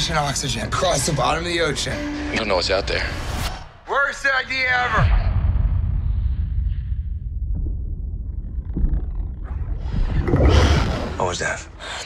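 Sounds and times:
deep low cinematic rumble: 0:05.2 - 0:11.3.

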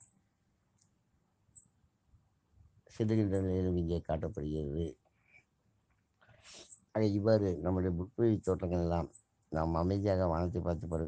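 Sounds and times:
person talking: 0:03.0 - 0:04.9, 0:07.0 - 0:11.0.

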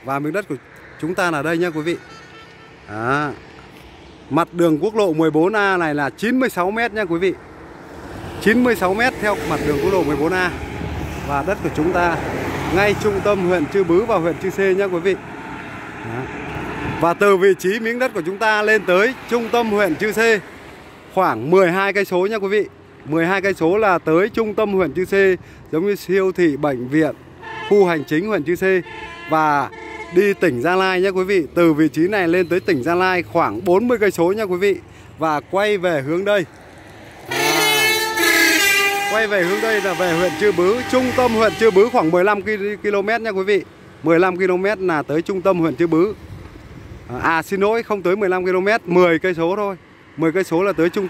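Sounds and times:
vehicle passing on highway: 0:00.0 - 0:51.0
truck horn blaring: 0:01.6 - 0:02.9, 0:27.4 - 0:31.1, 0:37.2 - 0:42.6.

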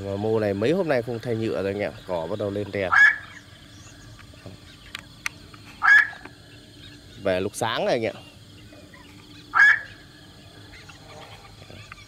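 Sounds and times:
heron calls: 0:00.4 - 0:04.9, 0:05.7 - 0:07.4, 0:08.1 - 0:12.0.

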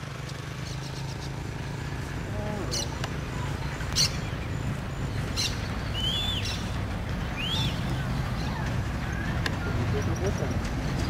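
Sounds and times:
diesel locomotive rumble: 0:00.0 - 0:11.0
birds chirping and whistling: 0:02.6 - 0:10.6.

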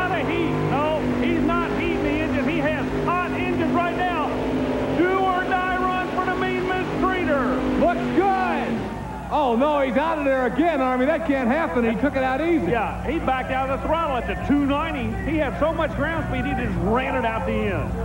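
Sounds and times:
pulling tractor engine roaring: 0:00.0 - 0:18.0.

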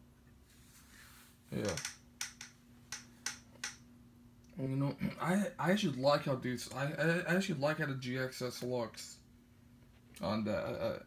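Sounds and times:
faint steady hum: 0:00.0 - 0:11.0
sharp clicks: 0:01.6 - 0:03.8.

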